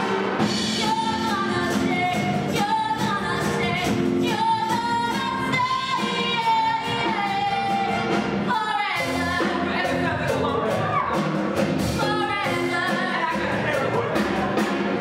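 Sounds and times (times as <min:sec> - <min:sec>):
band accompaniment with steady beat: 0:00.0 - 0:15.0.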